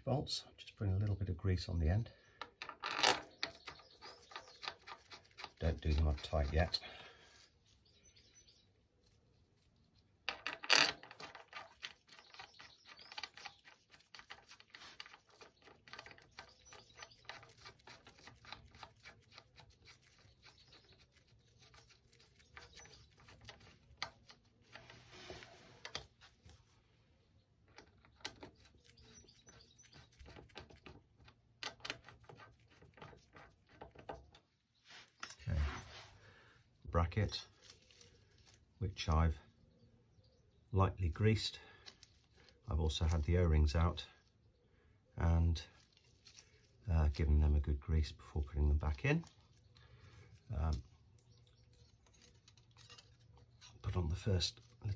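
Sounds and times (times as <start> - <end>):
small metal parts clicking: 10.2 - 20.8, 51.1 - 54.0.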